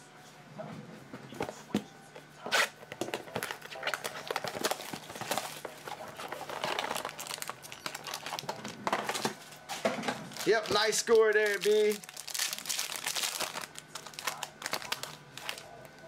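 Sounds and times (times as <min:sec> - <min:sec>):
cellophane ripping and crinkling: 0:02.5 - 0:09.4, 0:10.2 - 0:16.0.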